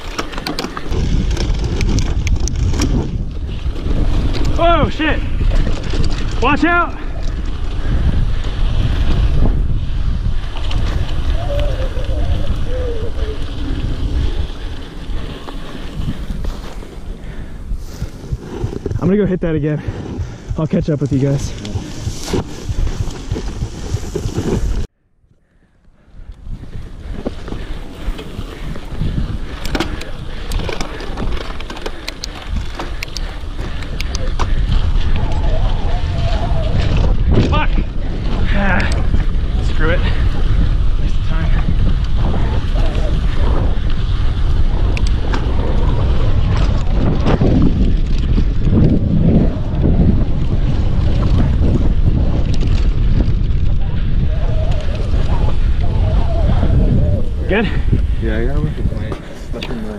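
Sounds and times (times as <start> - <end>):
bike clicks and rattles: 0.0 - 19.2, 19.8 - 59.9
wind rushing over microphone: 0.0 - 59.9.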